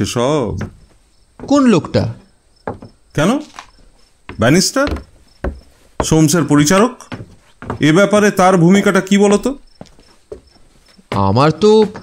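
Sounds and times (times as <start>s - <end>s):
man speaking: 0.0s - 0.8s, 1.4s - 2.3s, 3.2s - 3.6s, 4.3s - 5.0s, 6.0s - 7.2s, 7.8s - 9.6s, 11.1s - 12.0s.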